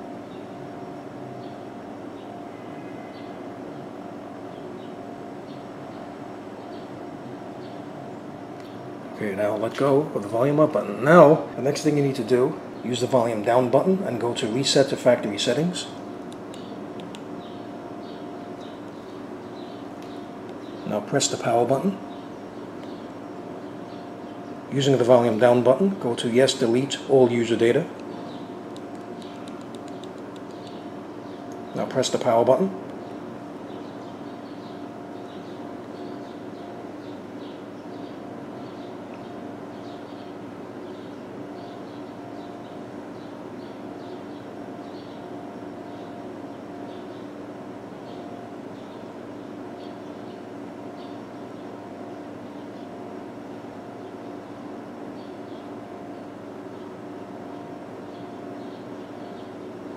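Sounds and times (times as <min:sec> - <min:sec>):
room tone hum: 0:00.0 - 0:59.9.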